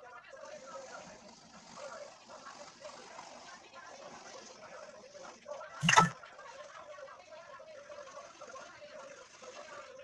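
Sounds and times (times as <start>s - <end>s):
faint background talk: 0.0s - 10.0s.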